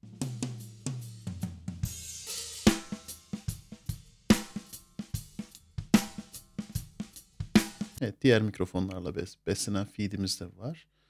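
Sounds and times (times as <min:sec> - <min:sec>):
cymbals and hi-hat: 0:00.0 - 0:08.0
snare drum: 0:02.6 - 0:08.0.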